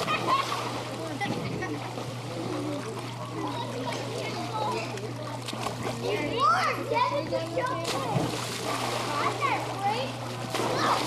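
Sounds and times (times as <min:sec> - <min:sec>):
children's voices: 0:00.0 - 0:02.0, 0:02.7 - 0:08.3, 0:09.0 - 0:11.0
water splashing in pool: 0:00.0 - 0:11.0.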